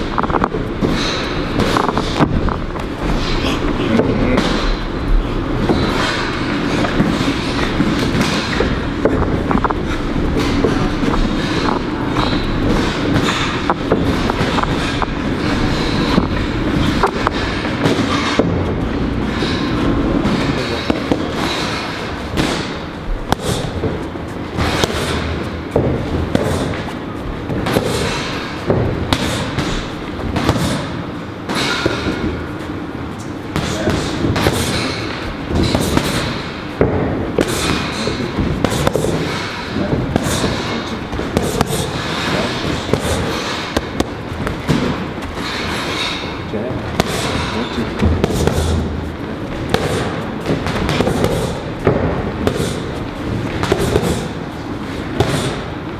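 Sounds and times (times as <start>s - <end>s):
boxing gloves hitting focus mitts: 5.6s - 19.4s, 20.2s - 32.4s, 33.5s - 55.8s.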